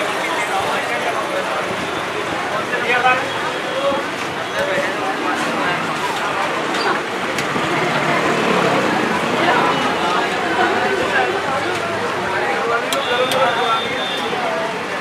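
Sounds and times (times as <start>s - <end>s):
chatter of voices: 0.0s - 15.0s
street noise: 0.0s - 15.0s.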